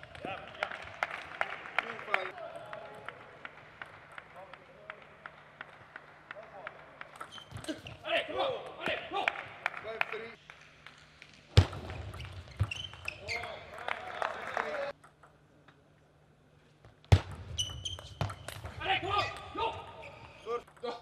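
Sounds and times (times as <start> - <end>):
shoes squeaking on floor: 7.2 - 8.1, 12.1 - 13.8, 17.5 - 20.6.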